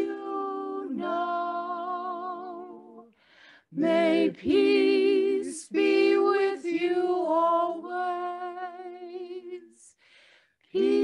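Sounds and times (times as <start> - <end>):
women singing a cappella: 0.0 - 10.1, 10.7 - 11.0
short breath: 3.1 - 3.7, 10.0 - 10.7.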